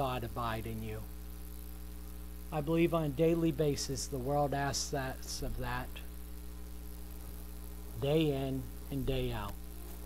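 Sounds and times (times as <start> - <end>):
faint hiss: 0.0 - 10.0
low mains hum: 0.0 - 10.0.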